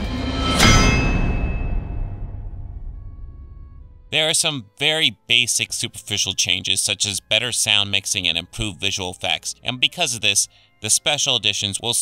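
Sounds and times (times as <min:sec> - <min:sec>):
metallic clang ringing: 0:00.2 - 0:02.5.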